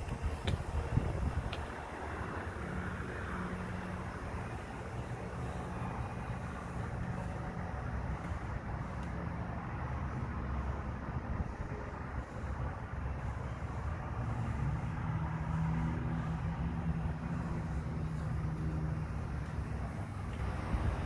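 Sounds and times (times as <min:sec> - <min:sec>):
pickup engine idling: 0:00.0 - 0:21.0.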